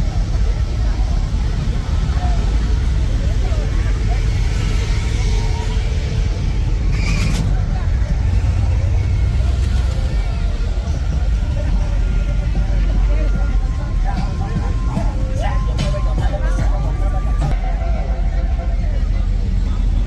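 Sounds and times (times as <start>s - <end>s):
car engines idling and rolling: 0.0s - 20.0s
voices of people: 0.0s - 20.0s.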